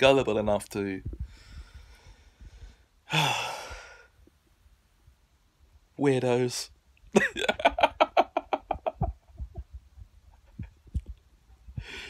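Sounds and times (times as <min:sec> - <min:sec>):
man sighing: 0:03.1 - 0:04.1.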